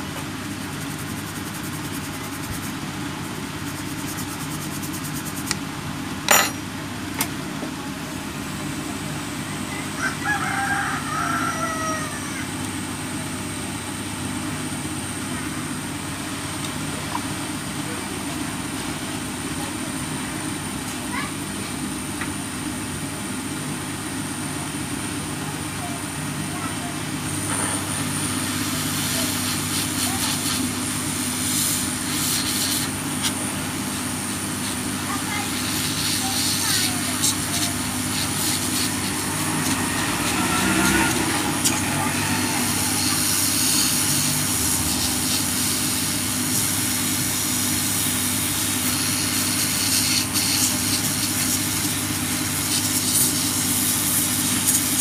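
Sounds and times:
low mechanical hum: 0.0 - 55.0
distant rooster crowing: 9.8 - 12.6, 39.0 - 43.5.

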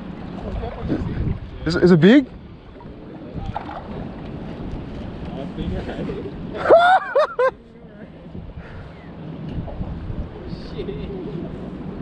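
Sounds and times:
wind buffeting microphone: 0.0 - 6.7, 8.1 - 12.0
water lapping around kayak: 0.0 - 6.9.

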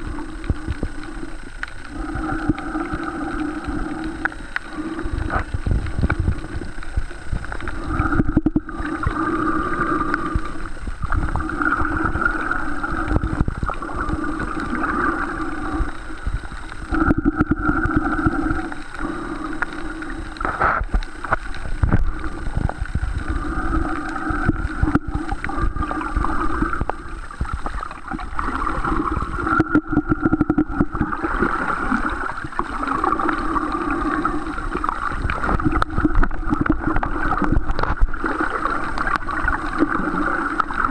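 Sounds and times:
low underwater rumble: 0.0 - 40.9.

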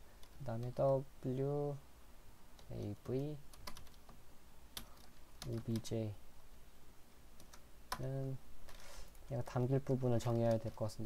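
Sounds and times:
keyboard typing: 2.6 - 4.1, 10.2 - 11.0.

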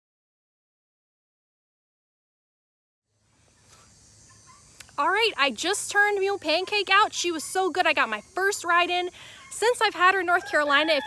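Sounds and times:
insects buzzing: 3.1 - 11.0.

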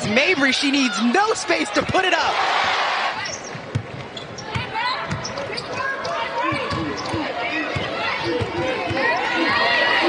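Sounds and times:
arena crowd noise: 0.0 - 10.0
sneakers squeaking: 3.2 - 10.0.

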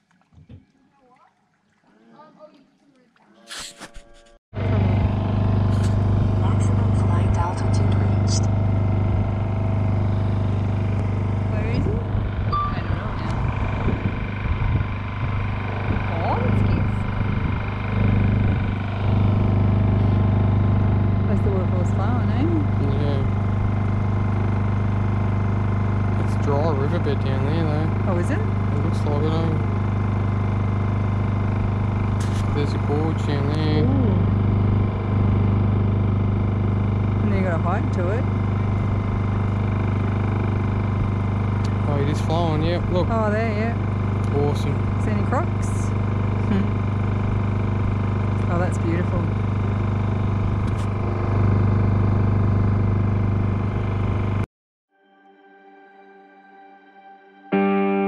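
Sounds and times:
outboard motor running: 4.6 - 54.5.

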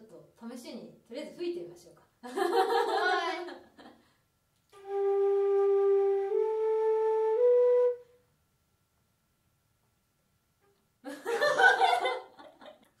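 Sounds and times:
flute playing held notes: 4.8 - 8.2.

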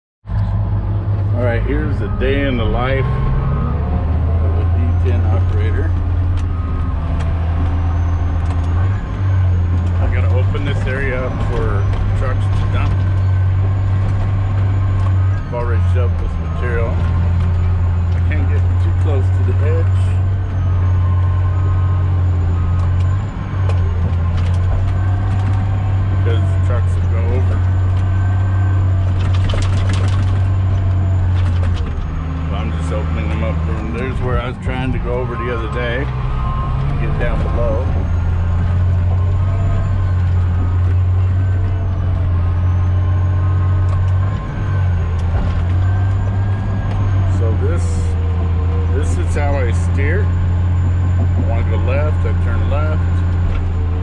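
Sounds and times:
diesel engine drone: 0.2 - 54.0.

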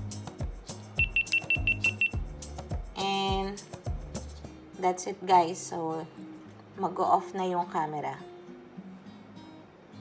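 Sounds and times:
background music with a beat: 0.0 - 4.6
camera short high beeps: 1.0 - 2.2.

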